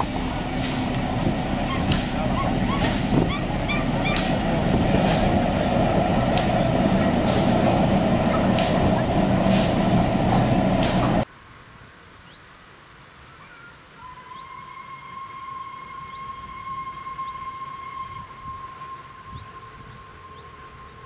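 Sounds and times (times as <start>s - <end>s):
wheel clicks on track: 0.0s - 11.2s
diesel locomotive engine running: 0.0s - 11.3s
birds: 1.6s - 5.0s.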